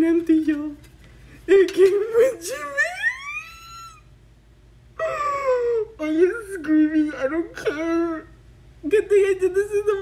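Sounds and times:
woman squealing with excitement: 2.8 - 4.0.

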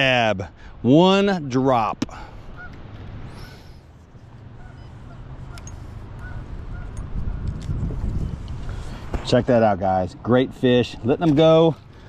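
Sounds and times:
geese honking: 2.5 - 2.8, 4.6 - 7.0
wind rumble on microphone: 4.5 - 9.6.

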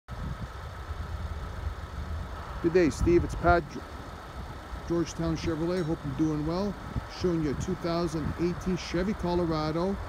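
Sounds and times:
diesel engine idling: 0.1 - 10.0.

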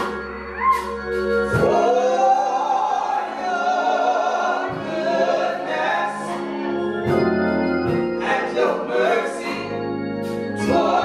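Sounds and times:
gospel singers in harmony: 0.0 - 11.0
sustained organ: 0.0 - 11.0.

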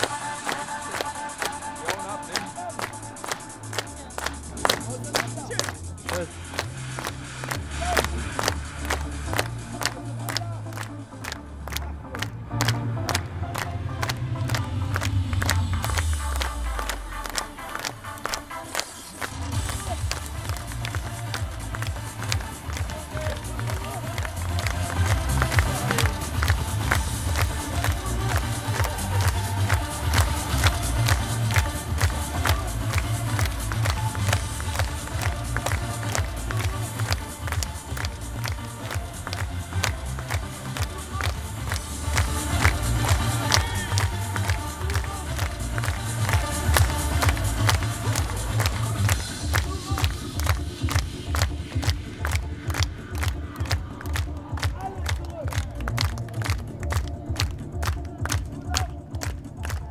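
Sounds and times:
upbeat dance music with heavy bass: 0.0 - 59.9.

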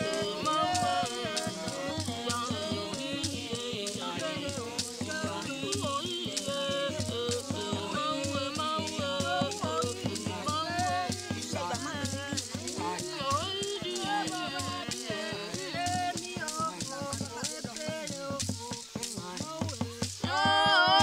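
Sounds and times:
polyphonic group singing: 0.0 - 21.0
steady percussion beat: 0.0 - 21.0.

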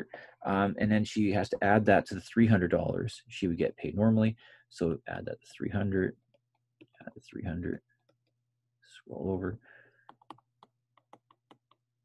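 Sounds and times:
stylus tapping on tablet screen: 10.0 - 11.9.

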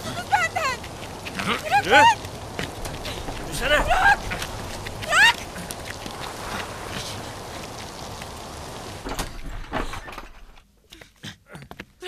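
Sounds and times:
steady rushing noise: 0.0 - 9.8.

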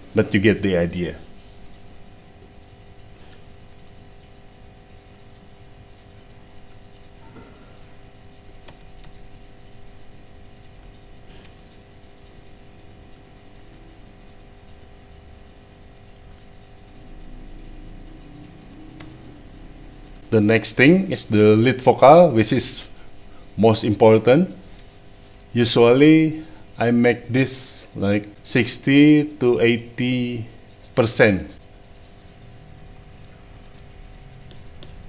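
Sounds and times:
steady hum of fixed tones: 0.0 - 35.0
laptop keys clicking: 8.4 - 9.3, 11.4 - 11.8, 19.0 - 19.3.

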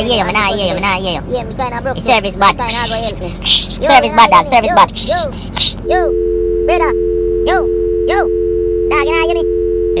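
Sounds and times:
two-tone telephone dial tone: 6.1 - 10.0.

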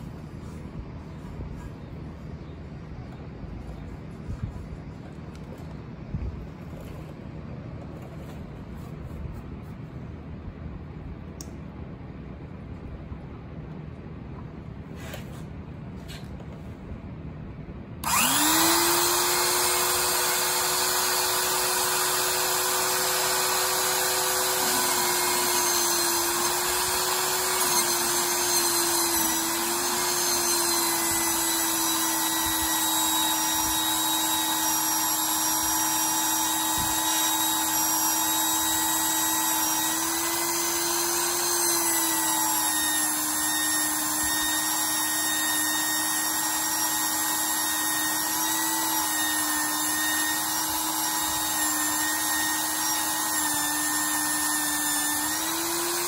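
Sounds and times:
drill press motor whining: 18.0 - 56.0.

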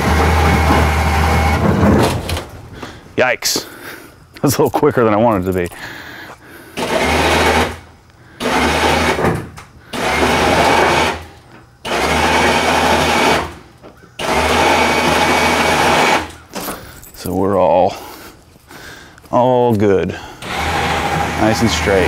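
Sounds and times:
electric winch running: 0.0 - 2.4, 6.7 - 16.4, 20.4 - 22.0.

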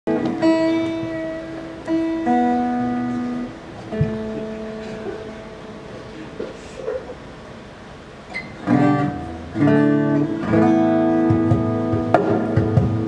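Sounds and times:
acoustic guitar chords: 0.1 - 7.4, 8.4 - 13.0.

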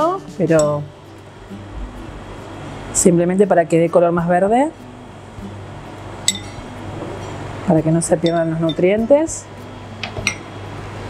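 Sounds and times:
low steady hum: 0.0 - 11.0
metal spoon clinking ceramic bowl: 6.3 - 6.7, 8.2 - 8.8, 10.1 - 10.5.

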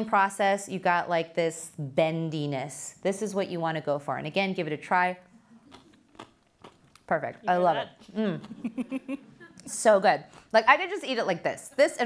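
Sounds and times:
person chewing crunchy pickle: 5.5 - 7.1
woman speaking: 7.1 - 8.4, 9.6 - 12.0.

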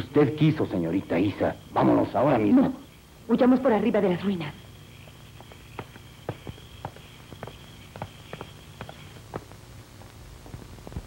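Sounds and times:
faint soundtrack hum: 0.0 - 11.0
hurried footsteps: 4.6 - 11.0.

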